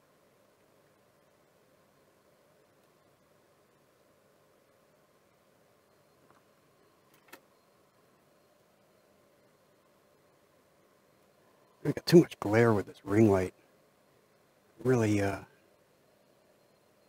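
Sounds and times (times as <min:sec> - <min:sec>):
room hum and hiss: 0:00.0 - 0:17.0
small clicks: 0:06.2 - 0:07.5.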